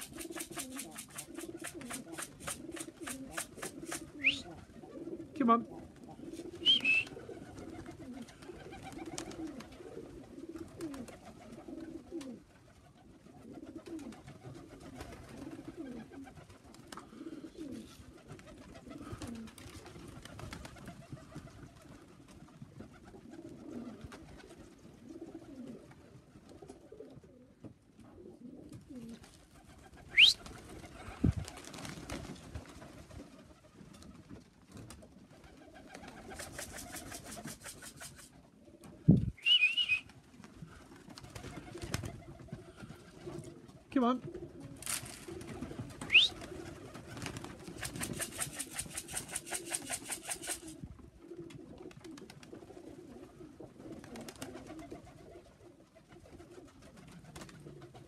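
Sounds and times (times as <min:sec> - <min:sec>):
pigeons cooing: 0:00.0 - 0:22.1, 0:22.8 - 0:32.2, 0:35.3 - 0:58.0
sharp rising whistle: 0:39.4 - 0:40.1.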